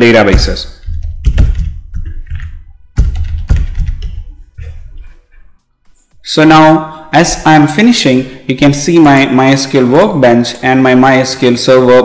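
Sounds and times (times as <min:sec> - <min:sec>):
typing on laptop keyboard: 0:00.8 - 0:04.4.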